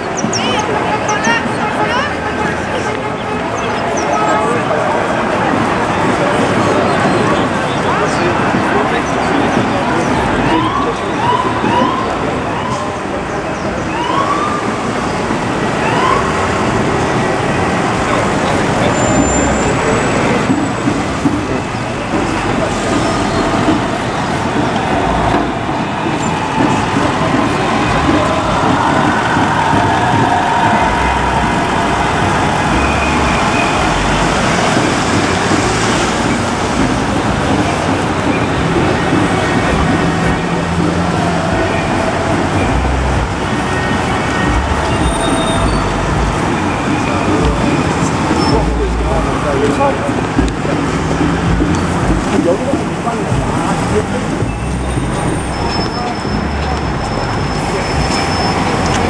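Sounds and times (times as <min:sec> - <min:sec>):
vehicles driving past: 0:00.0 - 0:59.0.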